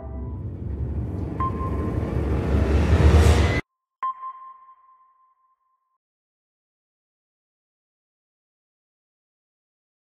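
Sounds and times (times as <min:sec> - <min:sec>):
rising whoosh: 0:00.0 - 0:03.6
sonar-like ping: 0:03.3 - 0:06.0.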